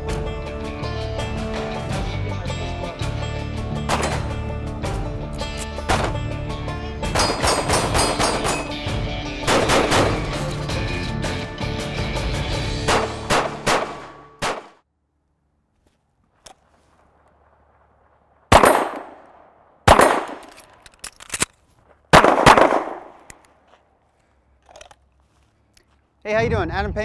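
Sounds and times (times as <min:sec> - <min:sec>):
music: 0:00.0 - 0:14.4, 0:26.3 - 0:27.0
pistol shots echoing: 0:07.1 - 0:08.8, 0:09.4 - 0:10.4, 0:12.9 - 0:14.8, 0:18.5 - 0:20.5, 0:22.1 - 0:23.3.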